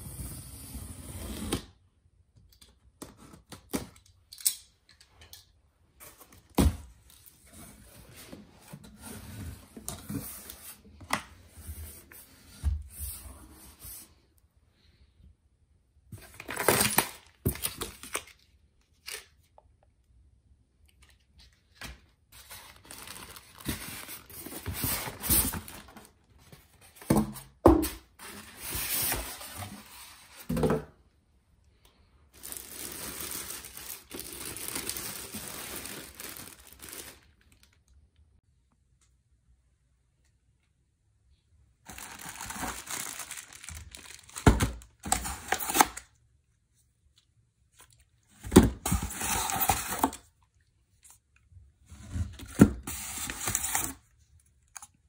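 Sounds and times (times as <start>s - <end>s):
packaging handling noise: 21.7s - 27.3s, 32.3s - 37.8s, 41.8s - 46.1s.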